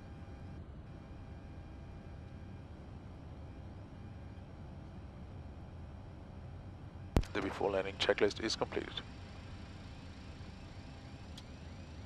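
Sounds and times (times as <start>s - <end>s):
faint steady whining tones: 0.0s - 12.0s
jet cockpit rumble: 0.0s - 12.0s.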